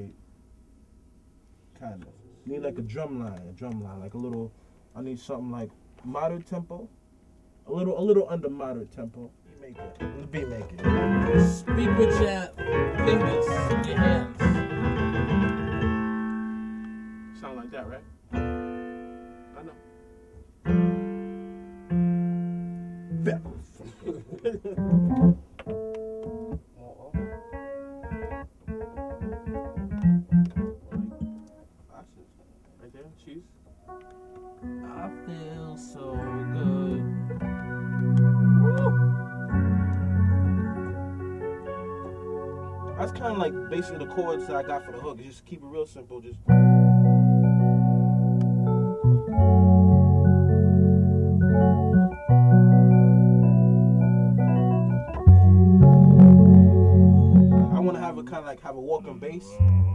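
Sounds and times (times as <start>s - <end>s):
electronic keyboard chords: 9.8s - 23.7s, 24.6s - 31.8s, 33.7s - 45.2s, 46.5s - 58.4s, 59.5s - 59.9s.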